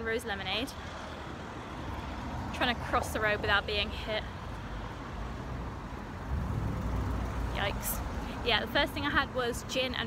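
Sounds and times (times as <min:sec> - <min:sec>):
car engine and tyres rumbling: 0:00.4 - 0:10.0.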